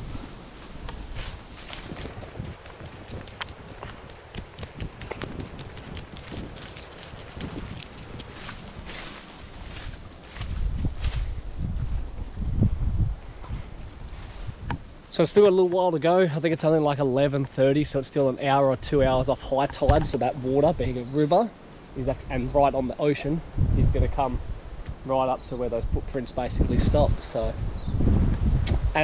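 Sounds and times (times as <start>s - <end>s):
wind buffeting microphone: 0.0s - 15.0s, 22.0s - 29.0s
footsteps on leaf litter and sand: 0.6s - 11.4s.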